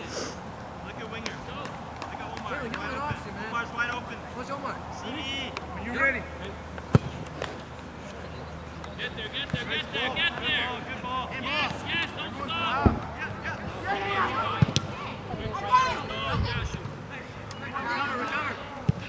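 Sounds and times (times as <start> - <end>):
players shouting: 8.8 - 19.0
soccer ball kicked: 14.5 - 15.0.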